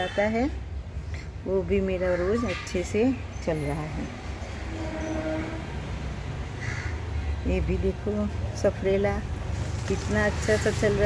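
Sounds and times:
horn-like tone: 4.6 - 6.0.

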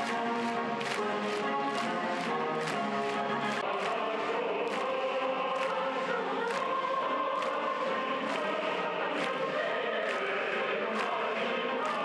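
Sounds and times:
choir singing: 0.0 - 12.0.

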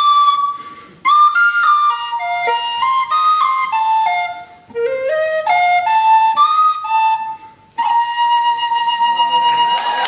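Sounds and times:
tin whistle: 0.0 - 10.0.

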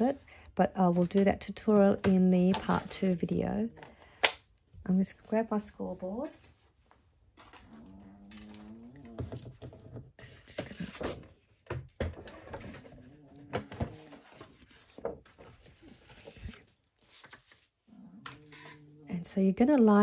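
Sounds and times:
paper rustling: 10.2 - 11.6, 12.2 - 17.8.

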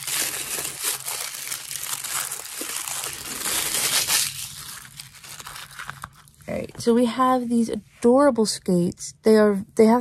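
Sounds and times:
paper wrapping crinkling: 0.0 - 6.5.

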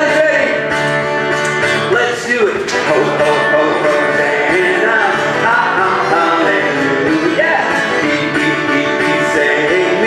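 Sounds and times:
acoustic guitar strumming: 0.0 - 10.0
voices singing along: 1.9 - 10.0.

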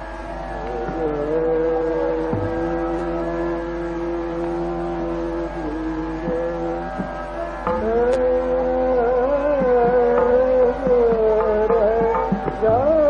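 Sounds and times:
steady drone: 0.0 - 13.0
man singing classical vocal: 0.6 - 13.0.

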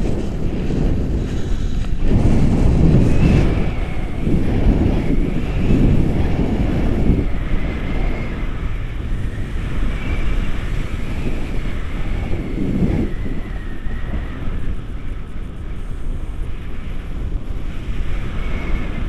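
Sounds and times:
wind rushing on microphone: 0.0 - 19.0
faint wavering high whistle: 1.2 - 15.5.

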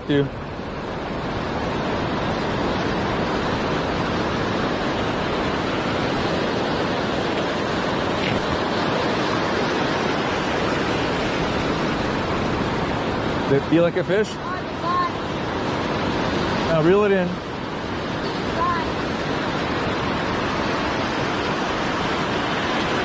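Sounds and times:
ocean surf breaking: 0.0 - 23.0.

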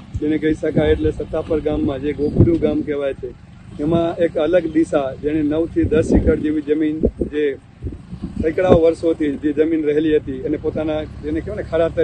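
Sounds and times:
low steady rumble: 0.0 - 12.0
man speaking: 0.2 - 7.7, 8.4 - 12.0.

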